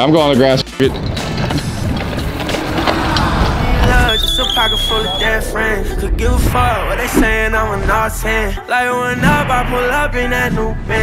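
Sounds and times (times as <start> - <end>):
scooter wheels rolling over grass: 0.9 - 4.5
song with vocals: 0.9 - 11.0
wind on microphone: 1.0 - 7.8.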